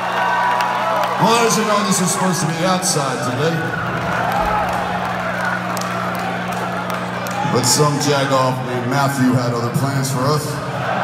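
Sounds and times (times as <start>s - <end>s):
concert crowd noise: 0.0s - 11.0s
low drone from amplifiers: 0.0s - 11.0s.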